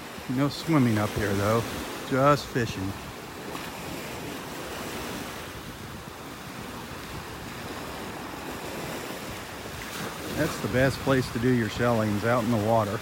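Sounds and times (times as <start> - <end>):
waves breaking on beach: 0.0 - 13.0
wind buffeting microphone: 0.0 - 13.0.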